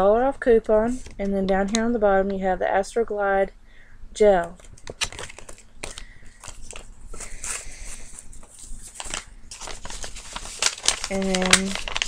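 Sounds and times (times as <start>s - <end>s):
packaging crinkling: 4.6s - 12.0s.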